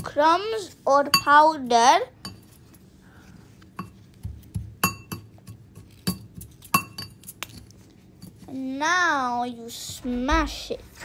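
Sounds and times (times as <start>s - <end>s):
metal masher clinking on bowl: 4.8s - 7.4s.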